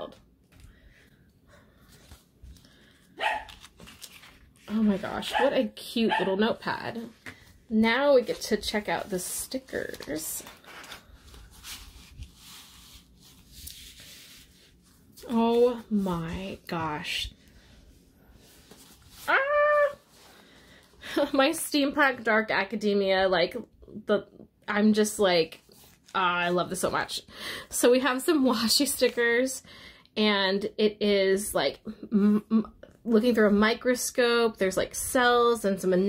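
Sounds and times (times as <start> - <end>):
dog barking: 3.2 - 3.5, 6.1 - 6.3.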